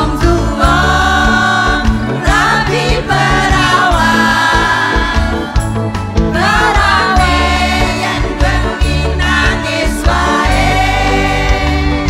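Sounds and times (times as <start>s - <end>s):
live band playing: 0.0s - 12.0s
steady bass line: 0.0s - 12.0s.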